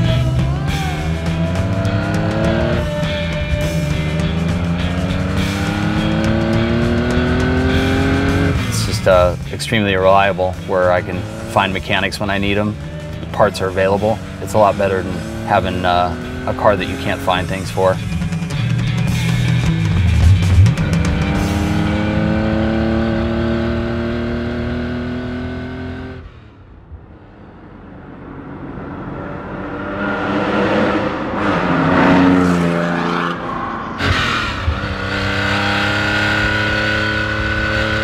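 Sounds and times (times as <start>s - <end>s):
car engine revving: 0.0s - 38.0s.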